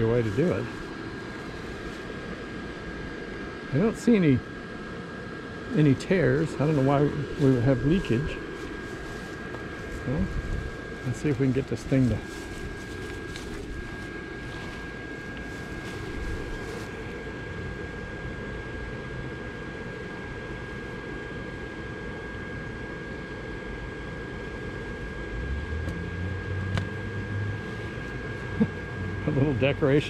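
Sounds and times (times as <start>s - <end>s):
electric blower fan running: 0.0s - 30.0s.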